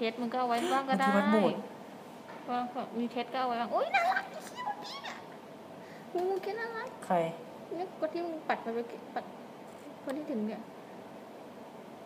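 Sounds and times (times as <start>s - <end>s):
woman squealing exclamation: 4.0s - 5.3s.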